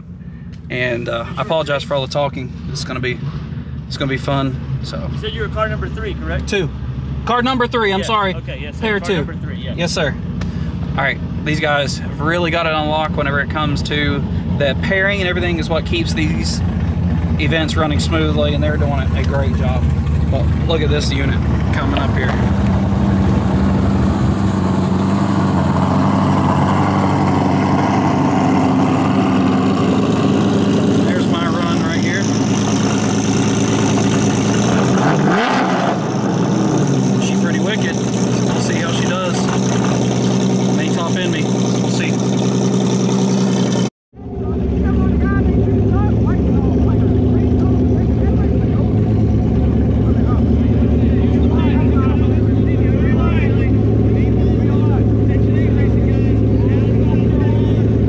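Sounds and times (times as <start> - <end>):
car engine idling and revving: 0.0 - 58.0.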